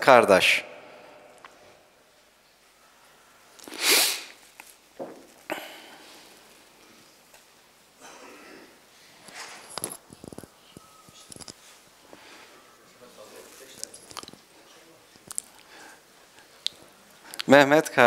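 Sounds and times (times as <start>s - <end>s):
loud breathy burst of noise: 3.7s - 4.4s.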